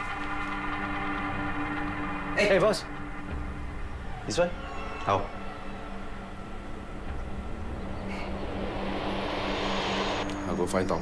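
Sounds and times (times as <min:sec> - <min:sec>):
low steady drone hum: 0:00.0 - 0:04.3, 0:05.3 - 0:11.0
tension riser noise swell: 0:05.4 - 0:11.0.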